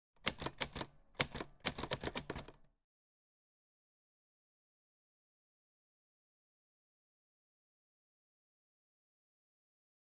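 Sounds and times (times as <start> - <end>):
typewriter keys clacking: 0.2 - 2.7.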